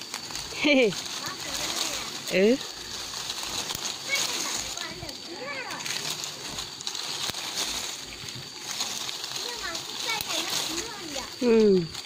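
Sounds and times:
faint voices: 0:00.0 - 0:12.0
leaves and twigs rustling: 0:00.0 - 0:12.0.

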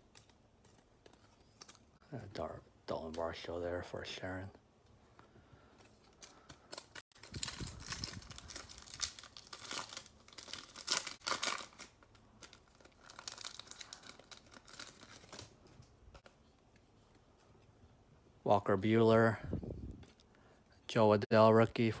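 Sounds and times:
plastic wrapper tearing and crinkling: 0:06.1 - 0:16.3.

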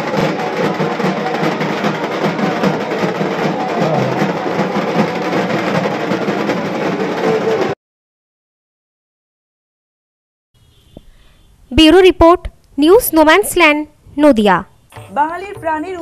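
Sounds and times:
drums beaten with sticks: 0:00.0 - 0:07.8.

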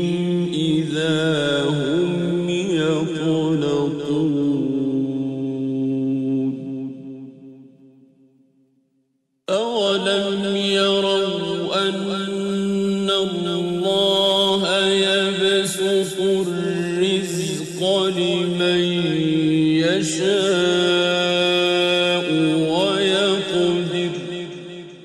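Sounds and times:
man chanting melodically: 0:00.0 - 0:07.6, 0:09.5 - 0:25.0.

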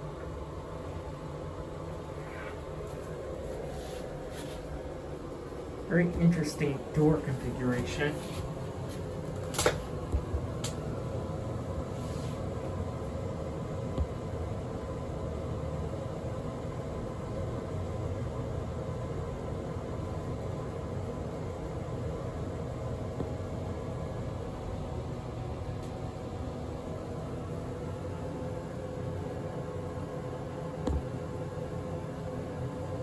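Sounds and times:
faint steady hum: 0:00.0 - 0:33.0.

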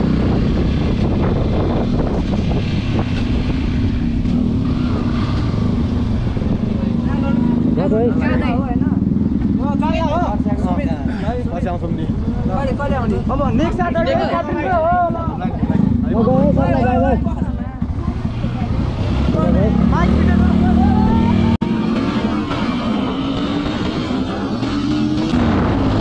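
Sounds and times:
motorcycle engine pulling away: 0:00.0 - 0:13.7
people talking: 0:06.6 - 0:23.1.

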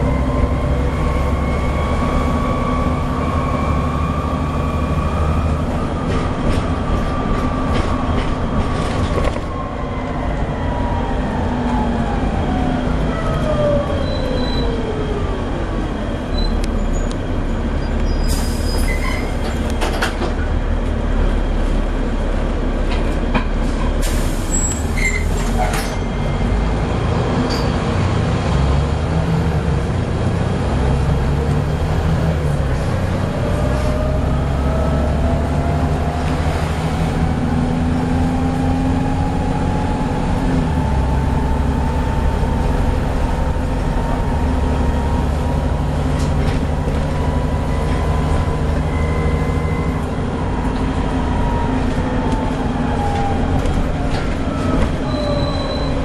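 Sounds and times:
bus diesel engine drone: 0:00.0 - 0:56.0
bus body rattling: 0:04.2 - 0:09.5, 0:16.2 - 0:26.3, 0:35.1 - 0:56.0.

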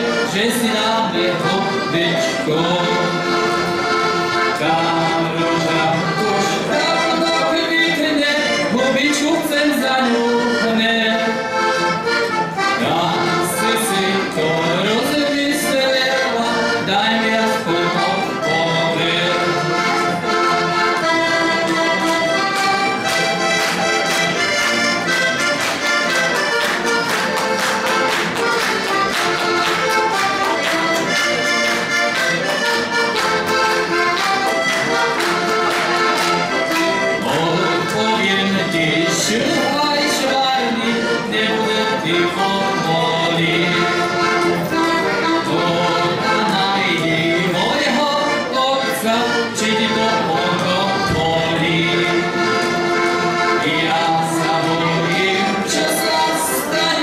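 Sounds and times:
button accordion folk tune: 0:00.0 - 0:57.0.

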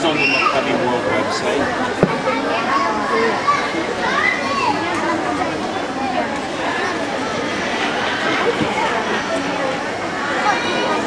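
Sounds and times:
chatter of many high voices: 0:00.0 - 0:11.0.

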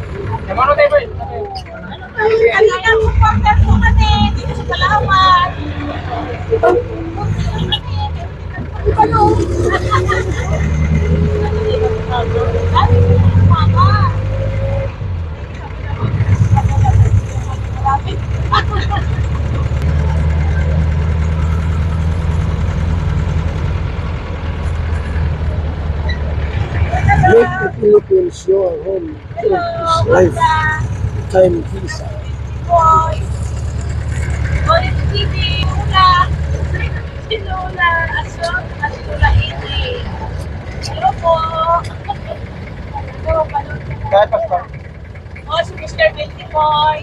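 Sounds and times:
rising engine whine: 0:00.0 - 0:47.0
vehicle engine and road noise: 0:00.0 - 0:47.0.

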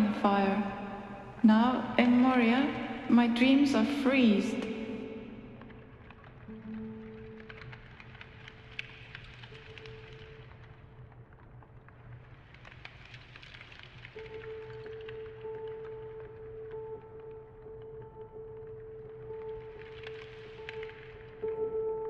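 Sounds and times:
ambient music with held tones: 0:00.0 - 0:22.0.

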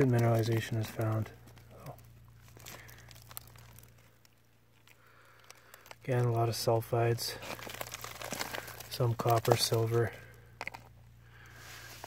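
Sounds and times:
rock fragments crunching and clicking: 0:00.0 - 0:06.5, 0:07.3 - 0:10.9.

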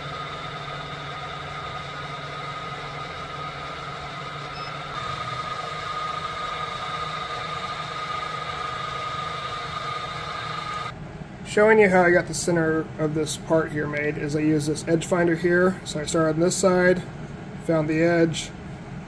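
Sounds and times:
milling machine running: 0:00.0 - 0:11.0.

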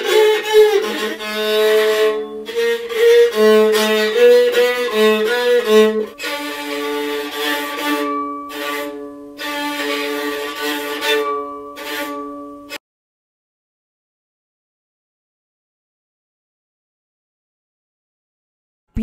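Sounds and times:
bowed fiddle melody: 0:00.0 - 0:12.8.

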